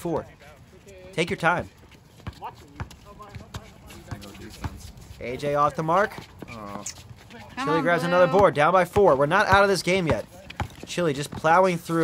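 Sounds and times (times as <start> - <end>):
basketball bouncing on hard court: 2.2 - 4.8, 8.3 - 11.6.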